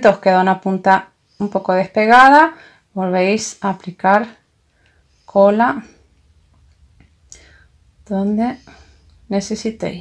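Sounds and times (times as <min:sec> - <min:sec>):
short breath: 0:07.3 - 0:07.8.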